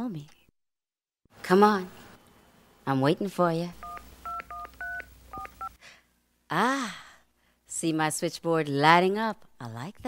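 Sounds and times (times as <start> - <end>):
telephone keypad dialing beeps: 3.8 - 5.7.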